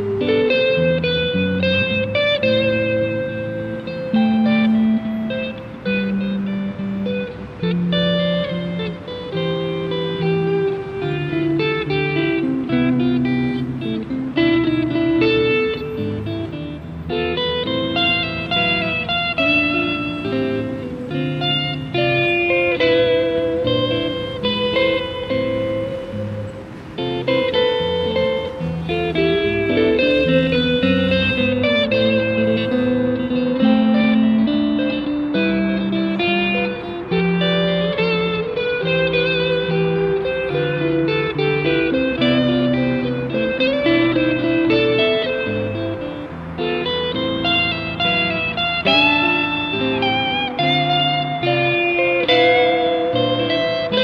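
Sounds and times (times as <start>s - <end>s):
electric guitar solo: 0.0s - 54.0s.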